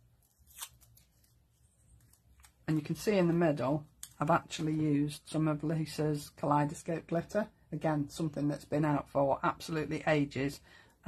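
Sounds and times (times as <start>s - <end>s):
faint paper rustles: 0.1s - 3.4s.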